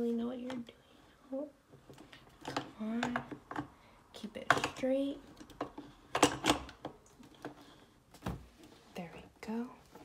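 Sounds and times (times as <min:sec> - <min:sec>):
portafilter clicking and knocking: 0:04.4 - 0:07.6.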